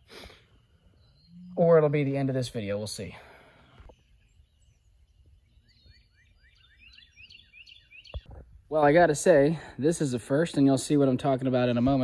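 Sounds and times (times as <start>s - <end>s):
bird chirping: 0.0s - 8.5s.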